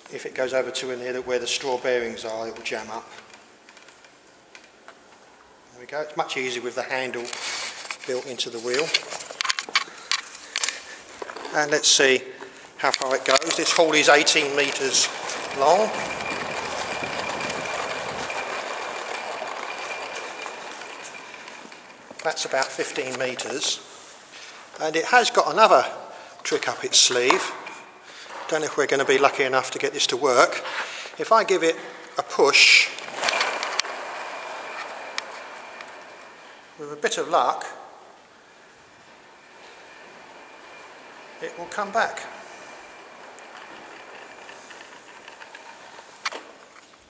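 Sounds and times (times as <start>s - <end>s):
toy car wheels rolling whirr: 6.6s - 12.1s, 12.8s - 25.8s, 26.4s - 47.0s.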